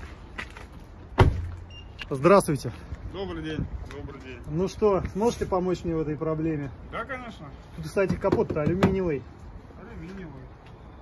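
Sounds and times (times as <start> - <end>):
car door slamming: 1.2 - 1.6.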